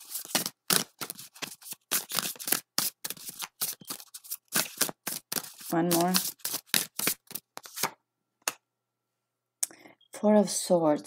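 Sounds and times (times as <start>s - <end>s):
cards being shuffled: 0.0s - 8.6s.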